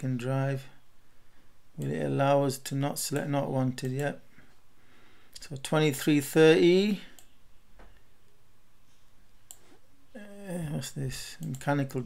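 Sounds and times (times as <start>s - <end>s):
computer mouse click: 11.4s - 11.8s.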